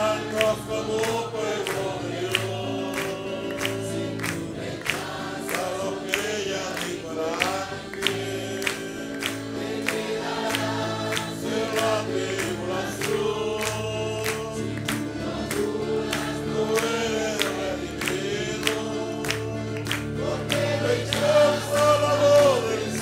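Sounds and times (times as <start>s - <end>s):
congregation singing a hymn: 0.0s - 23.0s.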